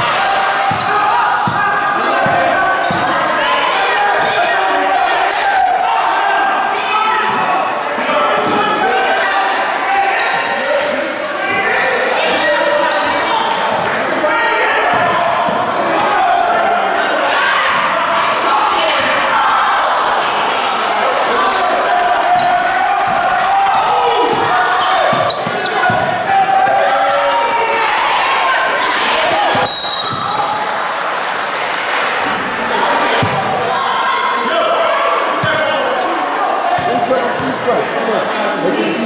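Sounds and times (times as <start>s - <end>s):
crowd voices and shouts: 0.0s - 39.0s.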